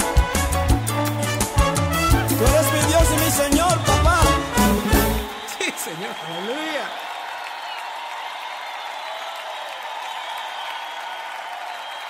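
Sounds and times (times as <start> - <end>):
audience applauding: 2.0 - 12.0.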